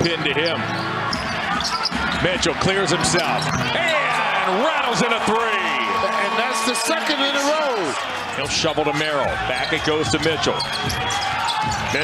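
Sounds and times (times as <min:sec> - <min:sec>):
man commentating: 0:02.2 - 0:10.7.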